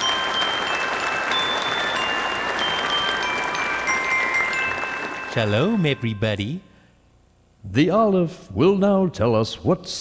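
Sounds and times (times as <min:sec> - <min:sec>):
applause: 0:00.0 - 0:06.1
high chime notes: 0:00.0 - 0:06.9.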